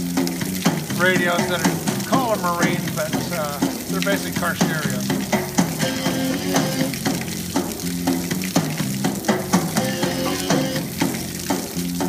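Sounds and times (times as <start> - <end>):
water spray splashing: 0.0 - 12.0
song playing on radio: 0.8 - 11.2.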